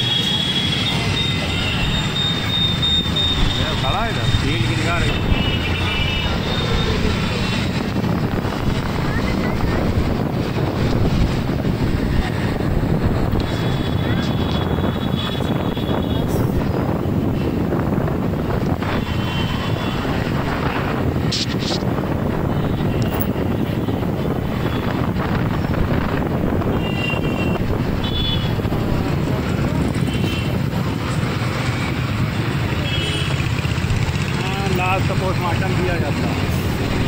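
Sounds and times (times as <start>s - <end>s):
wind on microphone: 5.0s - 32.4s.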